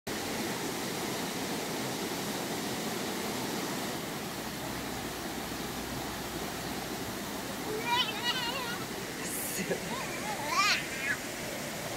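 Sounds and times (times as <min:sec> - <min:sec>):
creek rushing over rocks: 0:00.1 - 0:11.9
child squealing: 0:07.7 - 0:08.9, 0:09.9 - 0:11.2.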